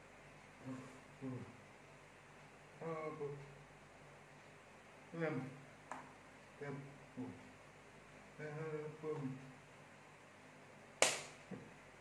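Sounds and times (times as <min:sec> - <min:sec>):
hands clapping: 0:11.0 - 0:11.6.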